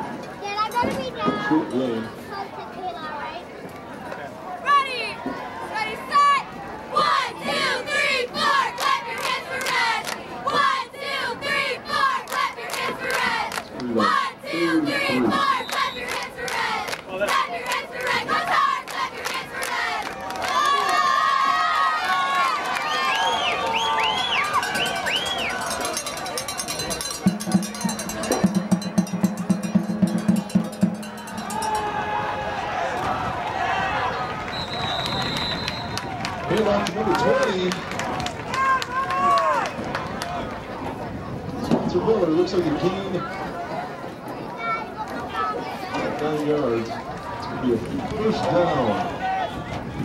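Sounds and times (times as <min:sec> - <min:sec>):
crowd shouting and cheering: 0:04.0 - 0:50.0
short high whistle: 0:34.5 - 0:36.0.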